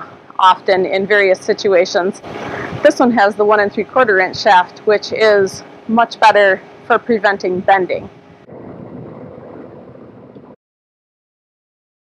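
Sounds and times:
wind on microphone: 0:02.2 - 0:05.7, 0:07.4 - 0:10.6.

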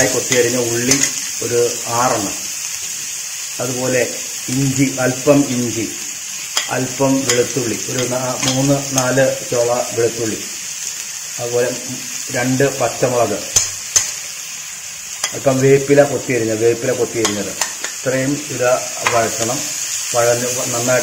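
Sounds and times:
spoon scraping a pan: 0:00.0 - 0:01.4, 0:06.3 - 0:09.2, 0:15.1 - 0:15.6, 0:17.2 - 0:18.0
onions sizzling in hot oil: 0:00.0 - 0:21.0.

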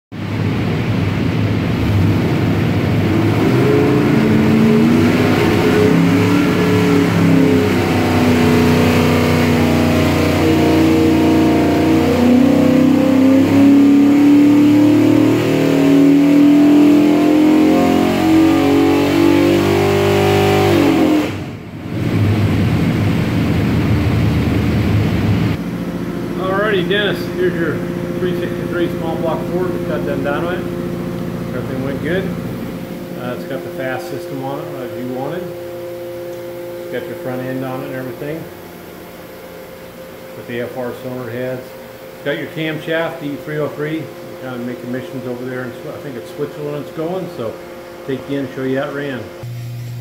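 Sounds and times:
engine running on a dyno: 0:00.1 - 0:50.0.

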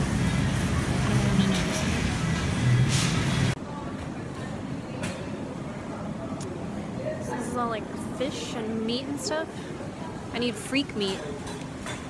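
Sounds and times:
store background: 0:00.0 - 0:11.9.

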